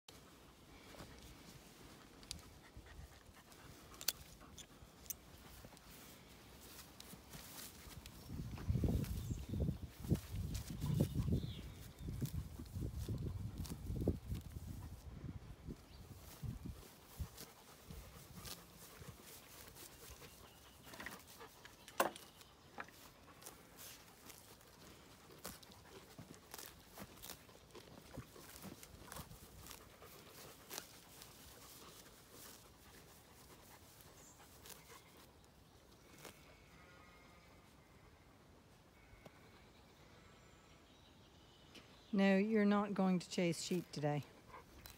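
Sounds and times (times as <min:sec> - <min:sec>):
pony tearing grass: 0:05.4 - 0:15.0, 0:16.1 - 0:21.6, 0:22.2 - 0:35.3, 0:36.0 - 0:36.7.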